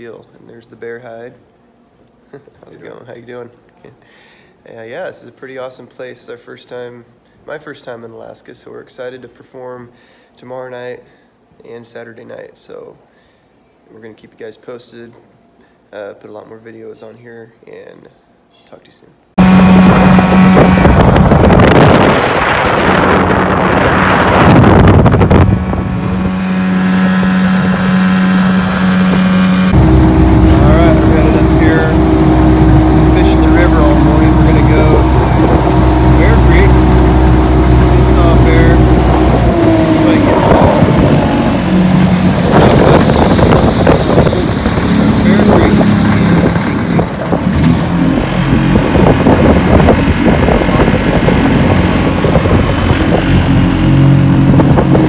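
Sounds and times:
motorboat engine running: 19.4 - 55.0
wind buffeting microphone: 19.4 - 55.0.

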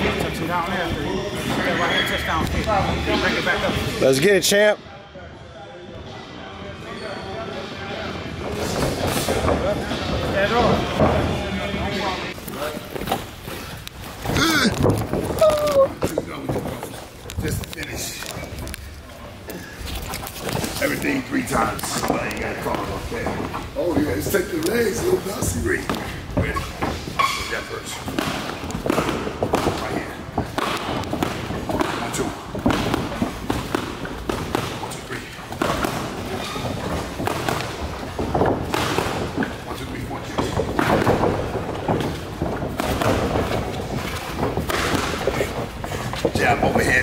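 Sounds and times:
footwork on ring canvas: 8.4 - 47.0.

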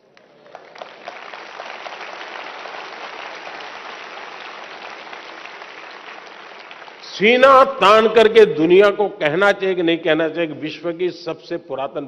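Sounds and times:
children applauding: 0.0 - 7.1.

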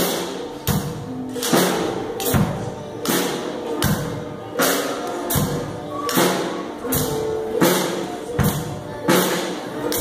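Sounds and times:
drum kit beat: 0.0 - 10.0.

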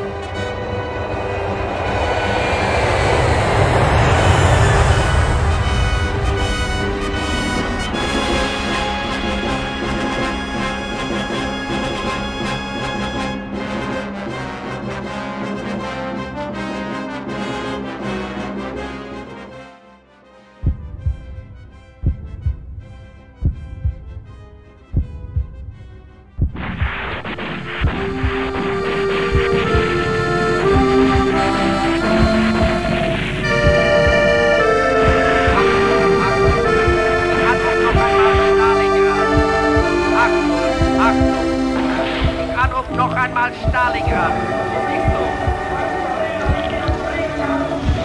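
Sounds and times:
rushing rumbling noise: 0.0 - 14.2, 26.4 - 48.0
brass music: 0.0 - 24.8, 25.6 - 48.0
heartbeat thumps: 20.6 - 48.0
faint music: 26.4 - 48.0
faint sustained hum: 26.6 - 48.0.

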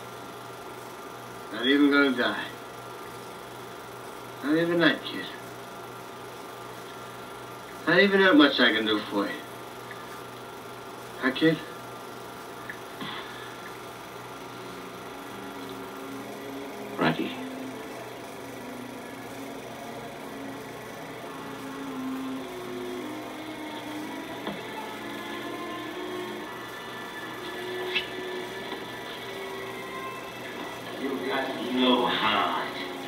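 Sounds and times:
film projector running hum: 0.0 - 33.0
dull film score music: 14.4 - 33.0.

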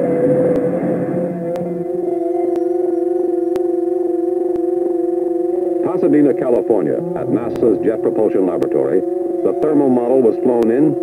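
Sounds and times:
sustained drone note: 0.0 - 11.0.

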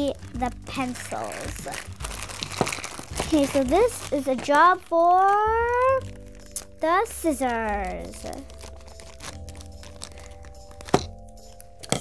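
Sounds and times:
plastic bag rustling: 0.0 - 12.0
scissors snipping plastic: 1.1 - 12.0.

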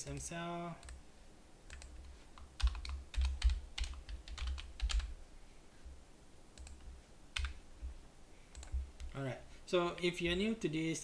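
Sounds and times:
computer keyboard typing: 1.7 - 5.1, 6.6 - 7.6, 8.5 - 9.2.

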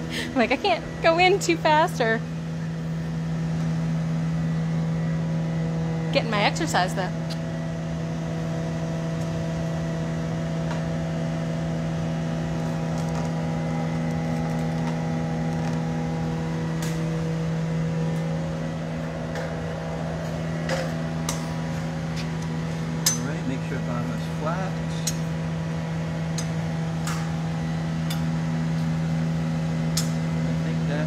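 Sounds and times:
equipment mechanical hum: 0.0 - 31.0.

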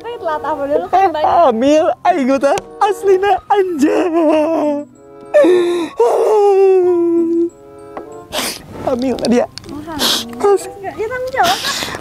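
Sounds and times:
man wailing: 2.8 - 7.5.

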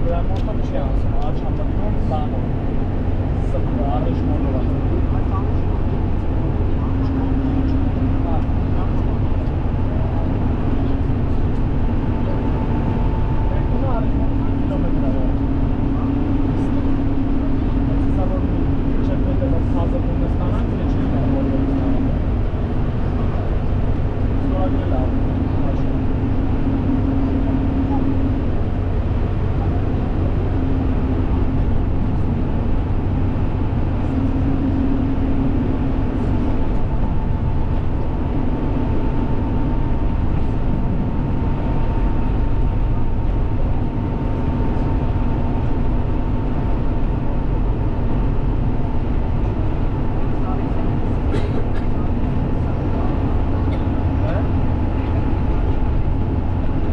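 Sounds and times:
car road and engine noise: 0.0 - 56.9
low hum: 0.0 - 56.9.

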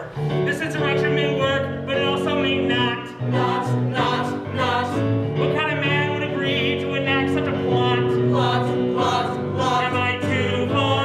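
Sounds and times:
keyboard accompaniment: 0.0 - 11.0
voices singing: 0.0 - 11.0.

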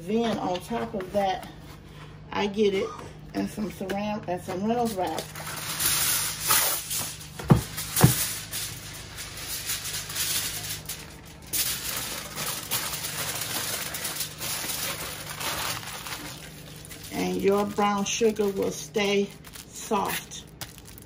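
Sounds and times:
plastic wrap and foil crinkling: 4.8 - 21.0.

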